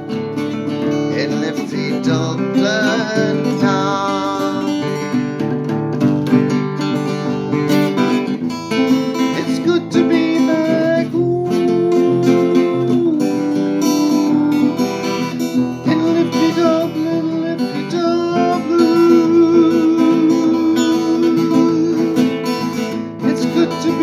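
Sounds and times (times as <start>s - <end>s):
acoustic guitar strummed: 0.0s - 24.0s
man singing: 0.7s - 5.3s, 8.0s - 24.0s.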